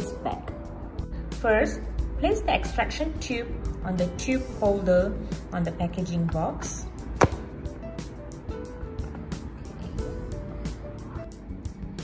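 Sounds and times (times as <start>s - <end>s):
background music: 0.0s - 12.0s
plastic tube snapping into holder: 7.2s - 7.5s.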